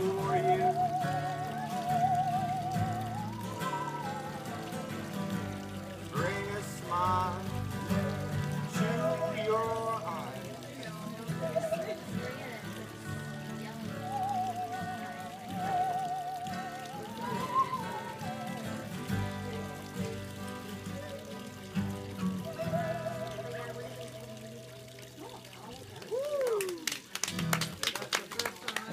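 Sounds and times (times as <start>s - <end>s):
strummed acoustic guitar chords: 0.0s - 25.1s
people clapping: 0.0s - 28.9s.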